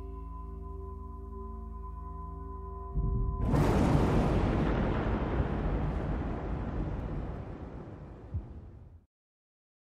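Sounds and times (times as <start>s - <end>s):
deep rumbling explosion effect: 3.0s - 9.0s.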